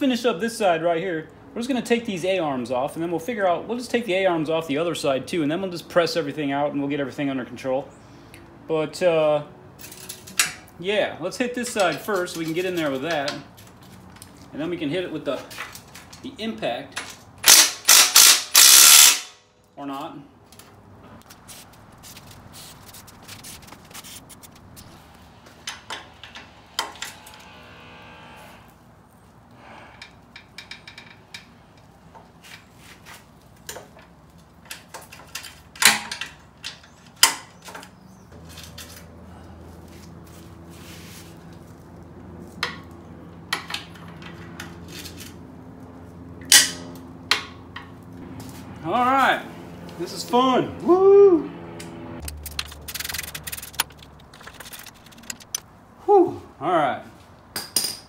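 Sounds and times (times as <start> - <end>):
hand tools clicking on metal: 52.2 - 55.6.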